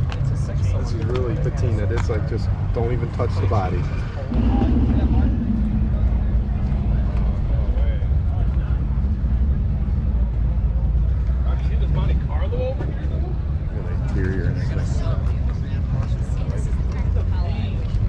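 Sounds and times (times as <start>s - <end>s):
faint crowd voices: 0.0s - 18.0s
car engine rumbling: 4.2s - 11.4s.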